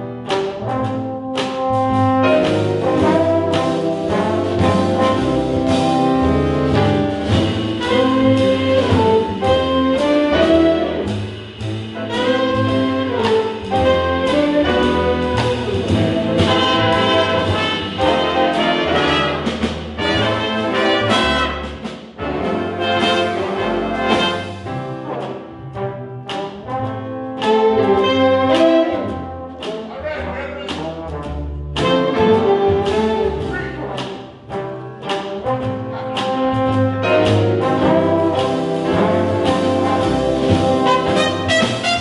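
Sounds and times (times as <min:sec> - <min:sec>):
horn ensemble accents: 0:00.0 - 0:42.0
jazz big band playing: 0:00.0 - 0:42.0.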